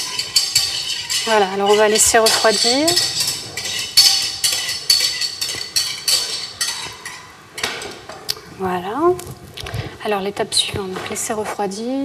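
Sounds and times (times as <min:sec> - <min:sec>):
utensil scraping a saucepan: 0:00.0 - 0:08.2.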